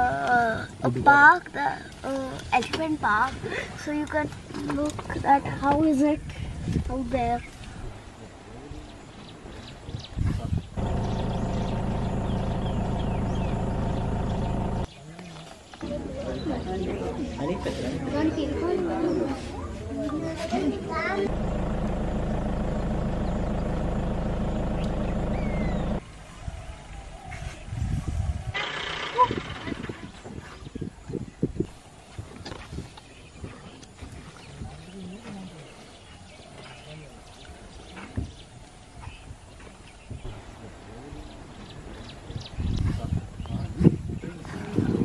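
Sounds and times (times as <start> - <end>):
vehicle engine idling: 10.8 - 14.9, 21.3 - 26.1.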